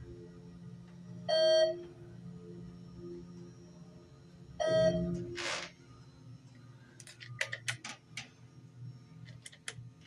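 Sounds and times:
elevator chime beeping: 1.3 - 1.9, 4.6 - 5.3.

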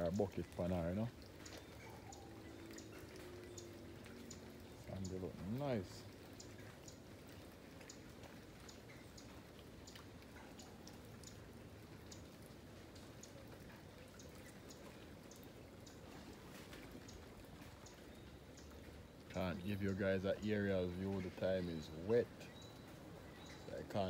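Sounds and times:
faint steady background noise: 0.0 - 24.0
water dripping ticks: 0.0 - 24.0.

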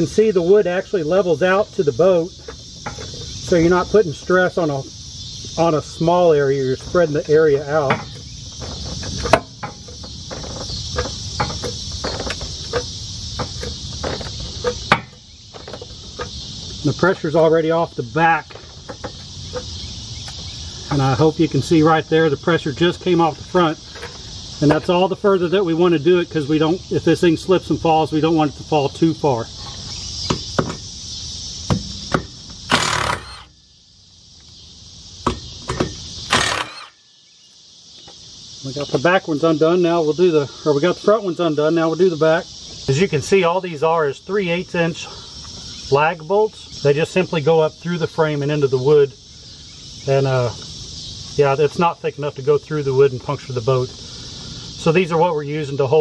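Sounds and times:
insects chirping: 0.0 - 56.0
cordless power tool running: 32.7 - 33.5, 36.3 - 37.0.

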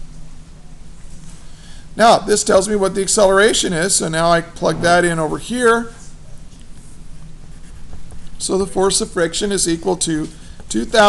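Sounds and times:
pencil scratching on paper: 6.8 - 8.4.

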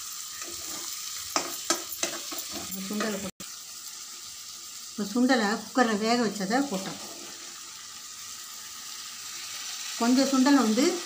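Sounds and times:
masala sizzling in a pan: 0.0 - 11.0.

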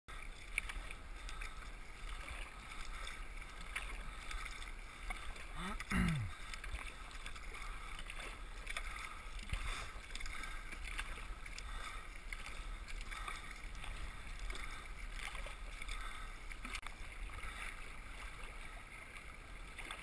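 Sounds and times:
paddle dipping into water: 0.1 - 20.0
waves splashing against hull: 0.1 - 20.0.

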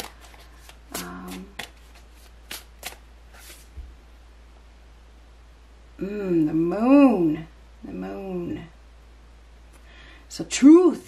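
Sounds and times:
cards snapping and flicking: 0.0 - 3.0.

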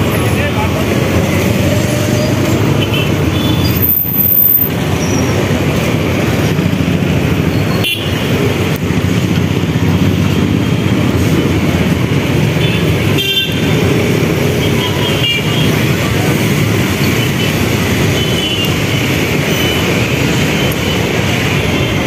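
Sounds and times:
rumble of passing vehicles: 0.0 - 22.0.

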